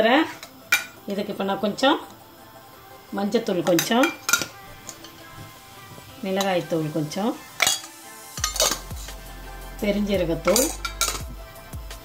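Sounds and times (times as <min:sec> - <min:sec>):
background music: 0:00.0 - 0:12.0
steel spoon clinking on tins: 0:00.3 - 0:01.0, 0:03.6 - 0:05.4, 0:07.5 - 0:09.1, 0:10.4 - 0:11.3.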